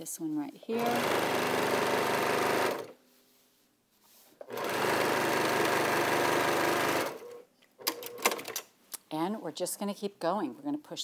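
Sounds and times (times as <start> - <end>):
sewing machine stitching: 0.7 - 3.0, 4.4 - 8.6.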